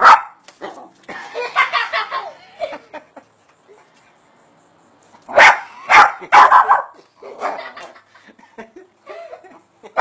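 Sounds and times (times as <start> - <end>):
dog barking: 0.0 - 0.4, 5.3 - 7.7.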